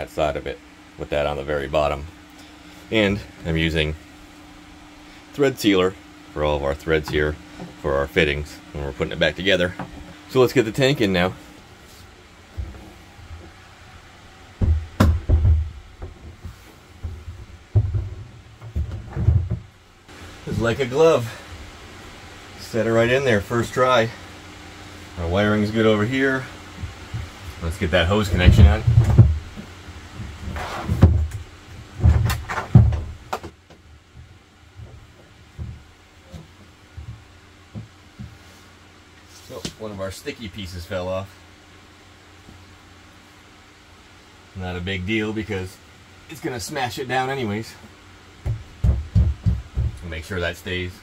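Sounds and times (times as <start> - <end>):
plastic tank thumping: 14.6 - 19.7.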